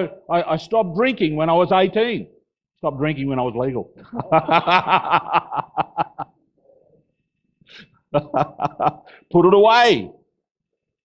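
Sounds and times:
man laughing breathily: 4.0 - 6.4, 7.7 - 9.3.

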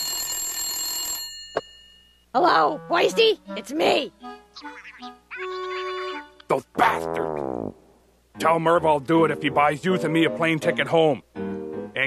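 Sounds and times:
telephone bell ringing: 0.0 - 2.2.

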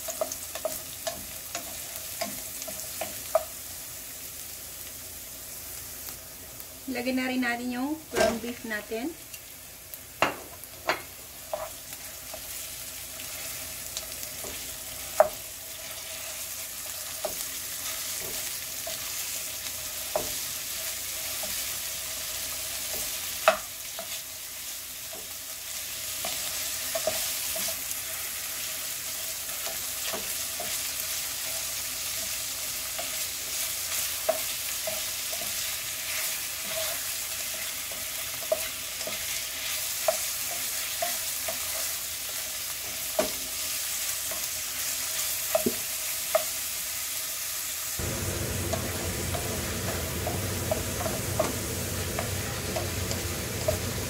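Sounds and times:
meat sizzling in a pan: 0.0 - 54.0
spatula scraping and knocking pan: 48.0 - 54.0.

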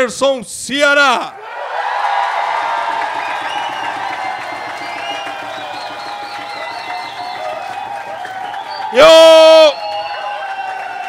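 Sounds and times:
drumroll patter: 2.1 - 11.0
crowd voices and whistles: 2.9 - 11.0.

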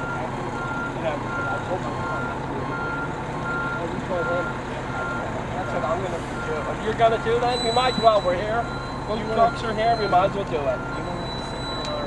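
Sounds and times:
truck backup alarm beeping: 0.0 - 12.0
truck engine humming: 0.0 - 12.0.

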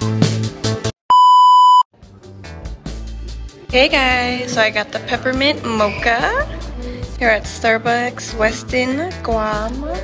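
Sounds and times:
music with a beat: 0.0 - 0.9
steady electronic beep: 1.1 - 1.9.

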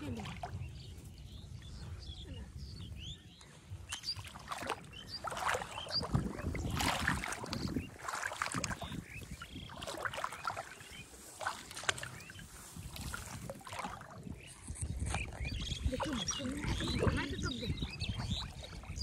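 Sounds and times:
pond water sloshing and splashing: 0.0 - 1.6, 3.4 - 19.0.

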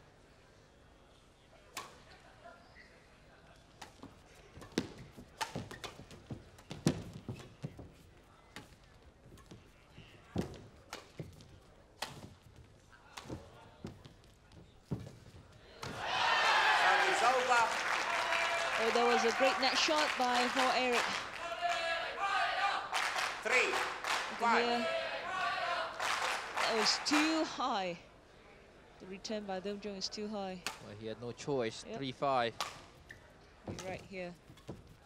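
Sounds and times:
racket striking shuttlecock: 3.8 - 7.6, 12.0 - 12.4
footfalls on court: 3.9 - 17.1
crowd cheering and applauding: 15.9 - 27.5.

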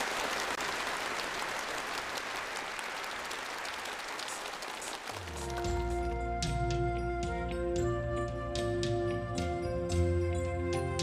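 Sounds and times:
audience applauding: 0.0 - 6.1
live band playing: 5.2 - 11.0.

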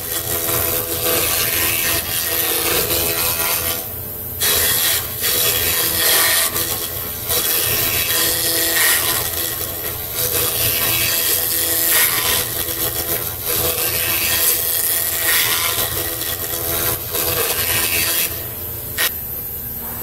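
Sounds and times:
cutter rasping through wood: 0.0 - 19.2.

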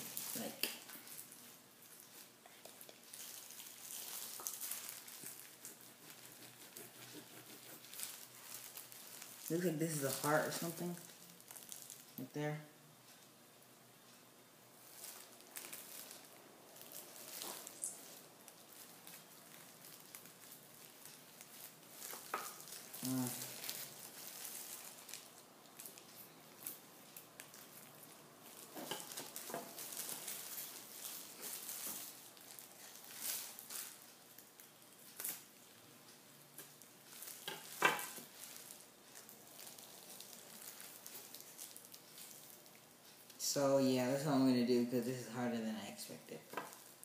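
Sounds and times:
plastic gloves crinkling: 0.0 - 12.5, 14.8 - 47.0.

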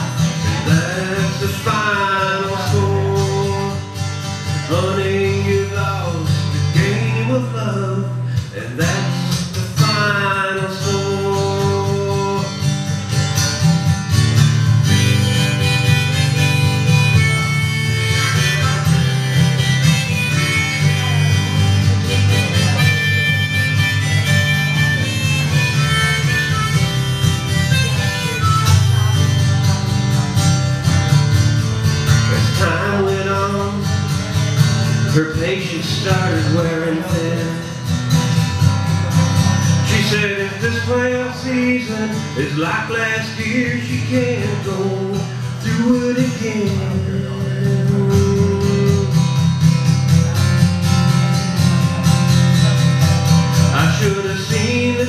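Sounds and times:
acoustic guitar strumming: 0.0 - 55.0
lead melody with bending notes: 11.4 - 55.0.

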